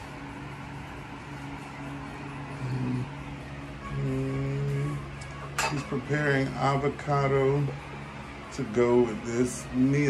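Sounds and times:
music with sung vocal: 0.0s - 10.0s
knife clinking against dish: 5.6s - 5.9s.

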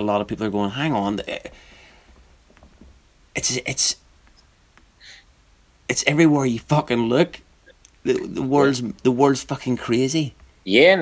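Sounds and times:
man talking: 0.0s - 1.6s, 3.3s - 4.0s, 5.9s - 11.0s.

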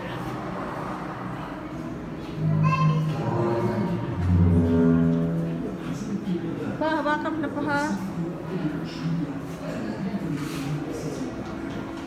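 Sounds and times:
low drone music: 2.4s - 6.2s.

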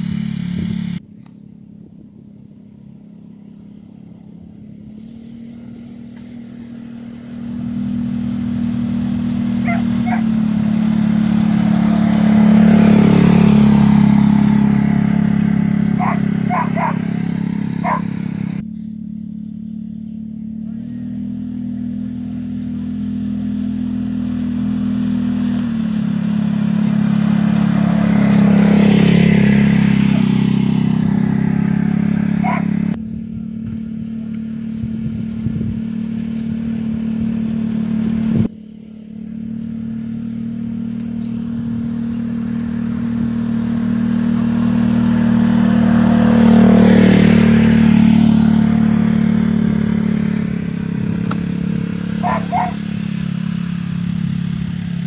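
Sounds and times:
utility vehicle engine running: 0.0s - 55.0s
tyres on sand: 52.1s - 52.8s
short high calls: 52.1s - 53.0s.

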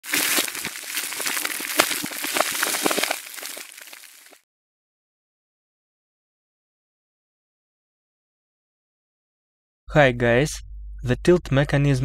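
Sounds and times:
crackling crunching clicks: 0.0s - 4.4s.

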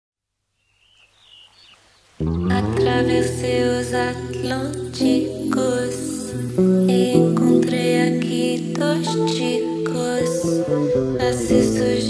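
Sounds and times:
birds chirping: 0.5s - 6.8s.

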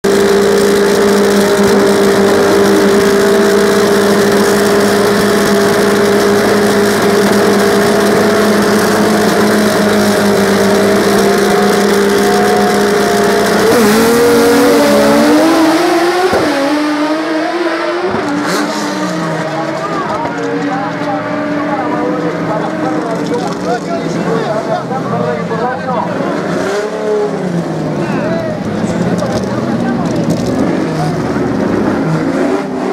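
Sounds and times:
drag race car engines revving: 0.0s - 32.9s.

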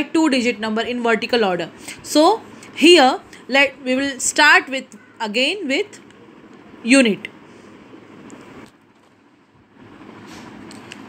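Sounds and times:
faint steady background noise: 0.0s - 11.0s.

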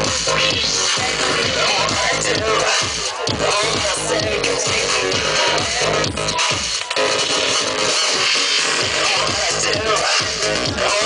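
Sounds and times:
steady kick drum: 0.0s - 6.8s, 8.6s - 11.0s
electronic dance music: 0.0s - 11.0s.

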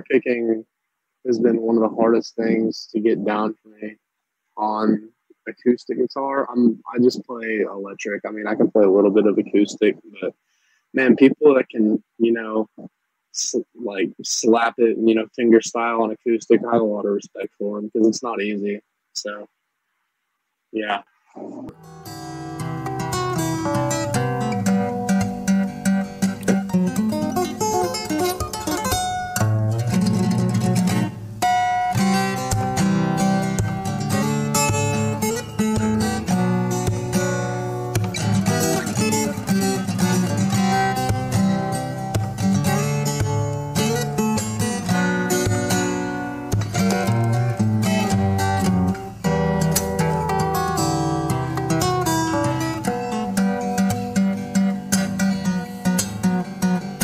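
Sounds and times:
fingerstyle acoustic guitar: 21.4s - 57.0s.

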